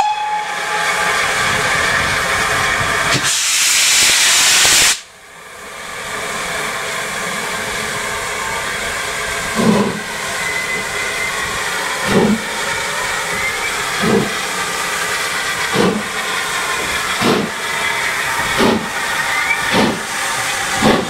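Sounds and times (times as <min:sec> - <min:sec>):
steam locomotive exhaust chuffs: 0:00.0 - 0:21.0
steam hissing: 0:01.2 - 0:05.1, 0:06.0 - 0:21.0.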